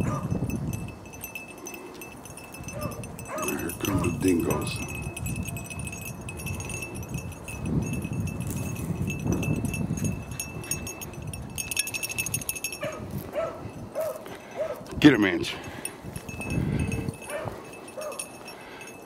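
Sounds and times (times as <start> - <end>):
dog yelping: 2.8 - 3.6, 12.8 - 14.8.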